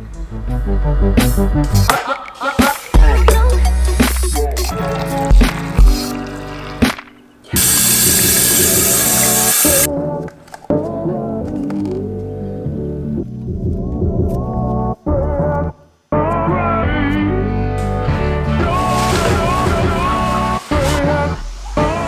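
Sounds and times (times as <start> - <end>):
background music with bass and beat: 0.0 - 10.1, 10.8 - 22.0.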